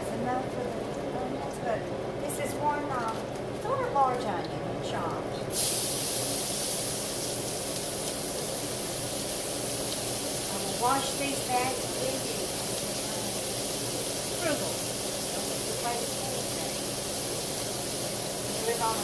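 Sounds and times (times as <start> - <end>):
onions sizzling in hot fat: 5.5 - 19.0.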